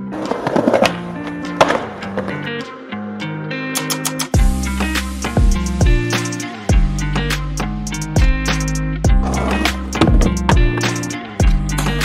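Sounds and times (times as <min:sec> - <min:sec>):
skateboard wheels rolling: 0:00.0 - 0:02.7, 0:09.2 - 0:11.0
chill guitar music: 0:00.0 - 0:12.0
skateboard clacks: 0:00.2 - 0:02.6.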